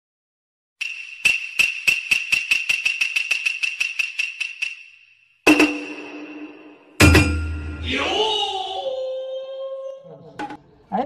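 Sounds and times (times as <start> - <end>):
sharp accelerating ticks: 0.8 - 5.2.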